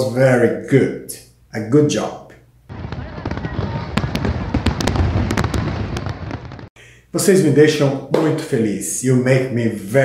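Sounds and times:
fireworks rumbling and crackling: 2.7s - 6.8s.

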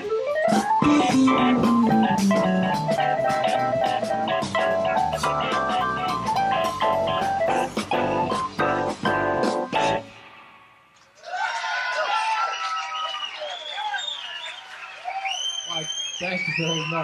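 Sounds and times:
drums steady beat: 0.0s - 10.1s
rock band playing live: 0.0s - 10.1s
electric guitar sliding notes: 0.5s - 7.9s.

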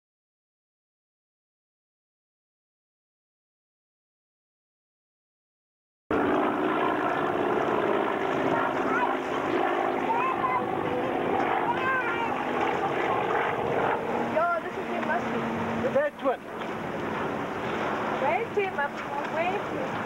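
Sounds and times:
propeller plane drone: 6.1s - 20.0s.

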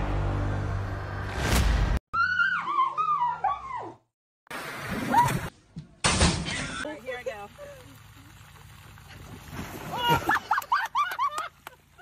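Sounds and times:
animal whining cries: 2.2s - 4.0s.

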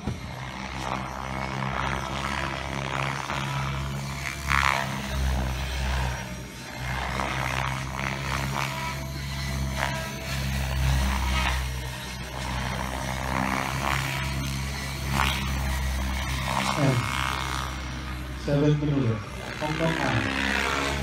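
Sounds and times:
radio-controlled helicopter rotor and motor: 0.0s - 21.0s
steady low hum: 0.0s - 21.0s.

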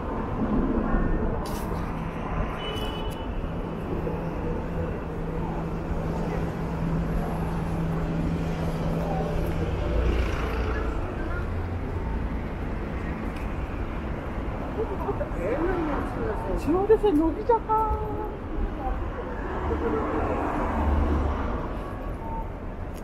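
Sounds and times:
car engines and tyres passing: 0.0s - 23.0s.

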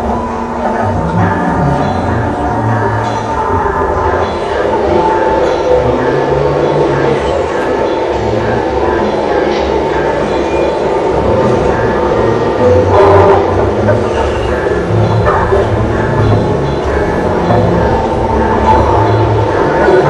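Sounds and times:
experimental electronic music: 0.0s - 20.0s
low throb: 0.0s - 20.0s.

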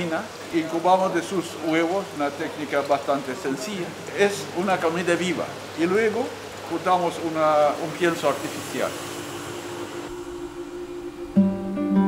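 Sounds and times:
faint hiss: 0.0s - 12.0s
steady low hum: 7.6s - 12.0s.

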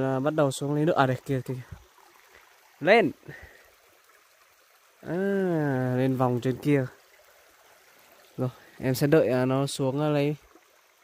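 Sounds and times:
creek trickling over stones: 0.0s - 11.0s
person speaking: 5.0s - 7.0s, 8.4s - 10.4s.

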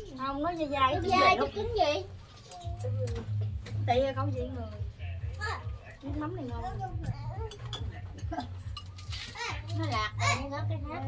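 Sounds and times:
quiet conversation: 0.0s - 11.0s
chopsticks clinking against bowls: 7.5s - 9.6s.

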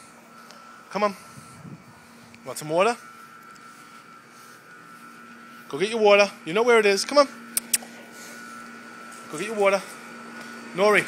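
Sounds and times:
background hum and hiss: 0.0s - 11.0s
thin high whine: 0.0s - 11.0s.

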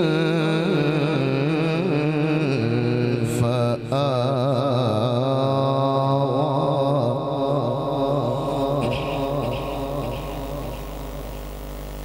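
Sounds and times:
man chanting melodically: 0.0s - 11.7s.

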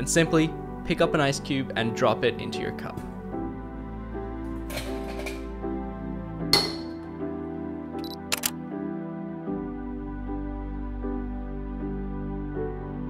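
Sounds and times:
background music: 0.0s - 13.0s
camera shutter clicks: 8.0s - 8.6s.

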